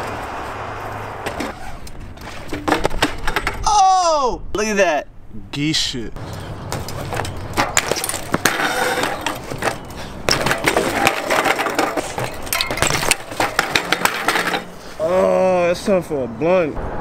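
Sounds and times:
bike tyres on concrete: 0.0 - 3.6, 6.2 - 15.4
bike crashing to the ground: 1.2 - 3.6, 6.7 - 14.8.

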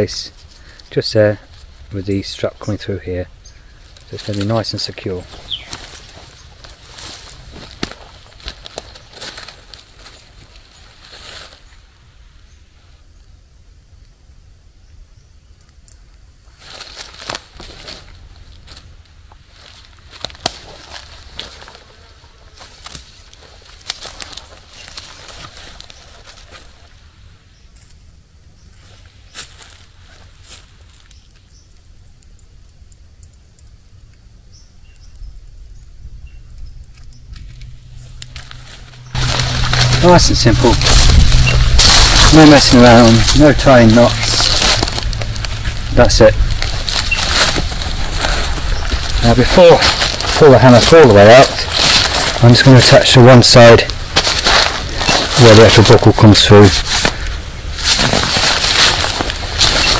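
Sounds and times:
webbing rustling: 0.0 - 11.9, 16.5 - 28.0, 36.8 - 59.9
footsteps on dry leaves: 3.7 - 11.8, 16.6 - 27.1, 28.8 - 31.1, 37.3 - 59.9.

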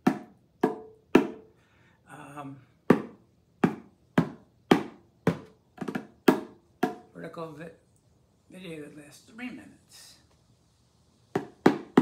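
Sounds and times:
bongos struck by hand: 0.0 - 1.5, 2.9 - 7.1, 11.3 - 12.0.

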